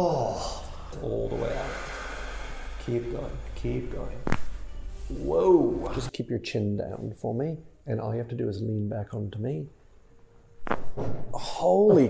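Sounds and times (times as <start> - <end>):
man speaking: 0.0 - 2.0.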